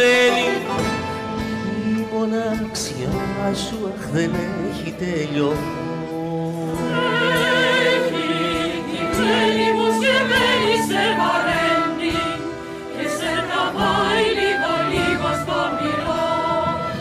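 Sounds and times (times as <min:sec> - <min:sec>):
live band music: 0:00.0 - 0:17.0.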